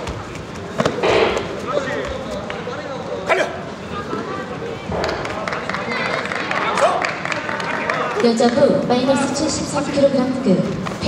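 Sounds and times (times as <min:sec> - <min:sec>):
short sharp sound: 0:01.0 - 0:01.8.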